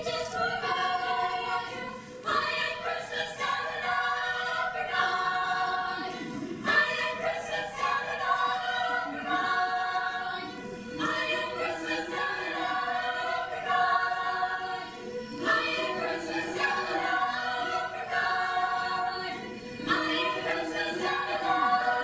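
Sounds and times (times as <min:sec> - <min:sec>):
girls choir singing in harmony: 0:00.0 - 0:22.0.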